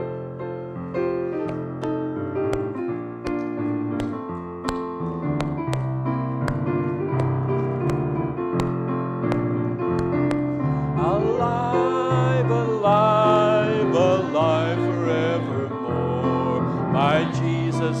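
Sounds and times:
piano chords: 0.0 - 18.0
hand claps on the beat: 1.5 - 10.6
person singing: 10.8 - 18.0.

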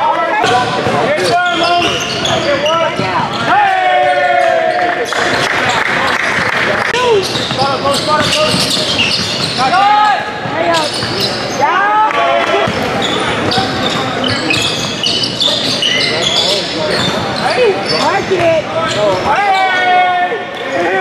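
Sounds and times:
sneakers squeaking on gym floor: 0.0 - 5.8, 6.9 - 11.9, 12.6 - 21.0
players' voices echoing: 0.0 - 21.0
basketball bouncing: 0.4 - 3.4, 6.4 - 11.5, 12.6 - 15.9, 18.1 - 19.3.

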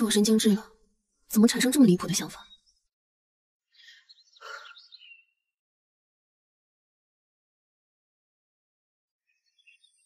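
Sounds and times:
birds chirping and twittering: 0.0 - 2.9, 3.7 - 5.6, 9.2 - 10.0.

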